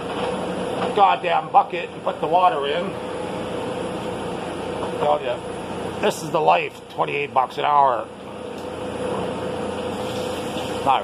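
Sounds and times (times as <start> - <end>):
refrigeration unit humming: 0.0 - 11.0.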